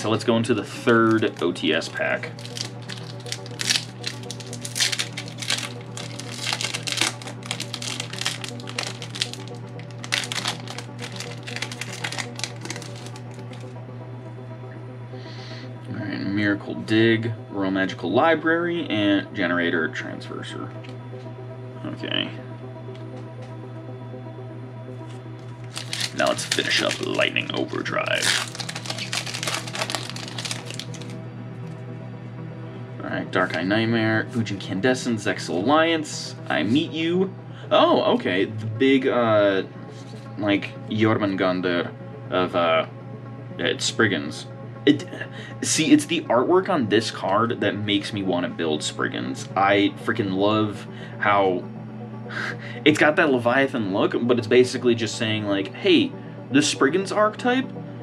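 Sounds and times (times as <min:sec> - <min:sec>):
background music: 0:00.0 - 0:58.0
foil wrapper tearing and crinkling: 0:02.2 - 0:13.7, 0:25.6 - 0:31.2.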